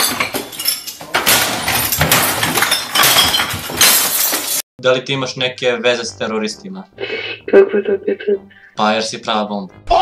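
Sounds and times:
glass breaking: 0.0s - 4.6s
things smashing: 0.0s - 4.6s.

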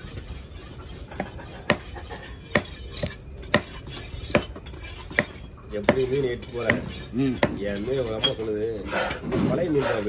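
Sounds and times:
knife chopping on wooden block: 1.2s - 1.9s, 2.5s - 7.6s.

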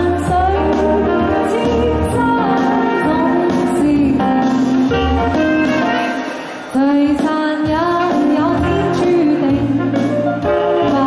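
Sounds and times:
woman singing: 0.0s - 5.2s, 6.7s - 11.0s
saxophone: 0.0s - 11.0s.

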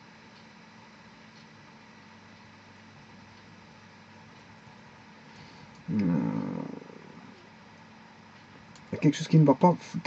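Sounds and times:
faint room hiss: 0.0s - 10.0s
man groaning: 5.9s - 7.4s.

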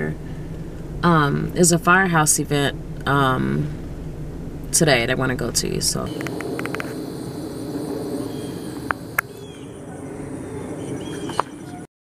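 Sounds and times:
distant engine drone: 0.0s - 11.9s.

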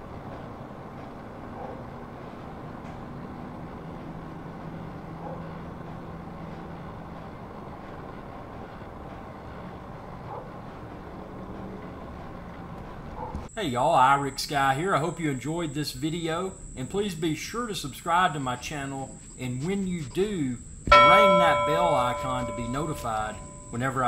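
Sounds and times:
faint hum: 0.0s - 24.0s.

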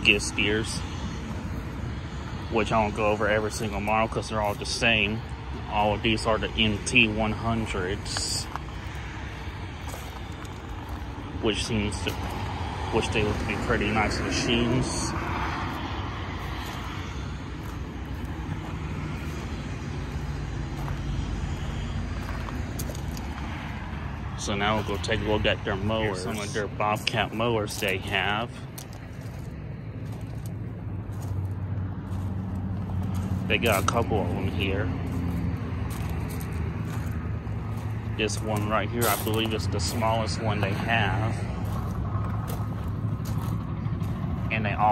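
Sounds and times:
low engine drone: 0.0s - 44.9s.

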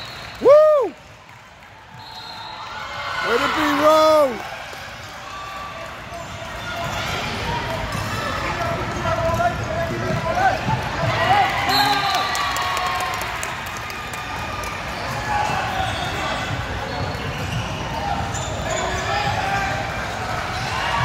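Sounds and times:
hubbub of voices: 3.2s - 21.0s.

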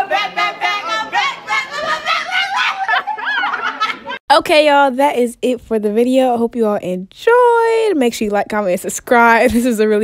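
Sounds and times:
girls laughing: 0.0s - 4.2s.

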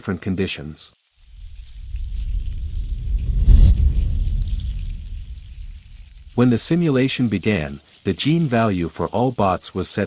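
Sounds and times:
deep rumbling swell: 1.2s - 6.9s.

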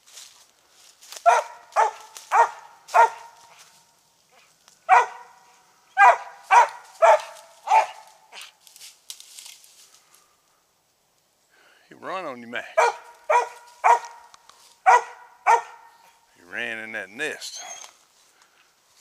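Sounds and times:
dog barking sharply: 1.2s - 3.6s, 4.9s - 5.4s, 6.0s - 8.4s, 12.8s - 14.2s, 14.8s - 16.2s.

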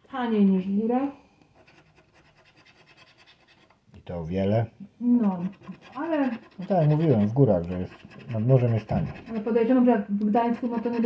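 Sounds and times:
scratch card rasping scrapes: 1.6s - 3.8s, 5.2s - 11.0s.

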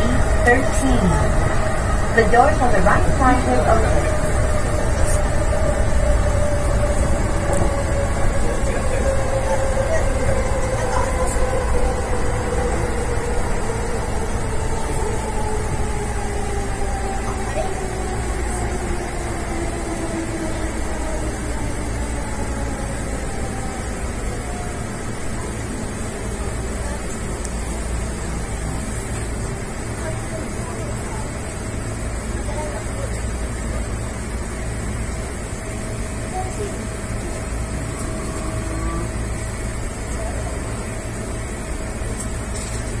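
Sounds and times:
train running gear rumble: 0.0s - 43.0s
electric train motors whining down: 37.3s - 40.6s.

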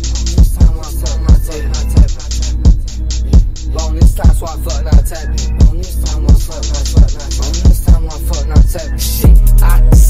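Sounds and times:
fast hi-hats ticking: 0.0s - 10.0s
rapping over a beat: 0.0s - 10.0s
deep kick drums: 0.1s - 10.0s.

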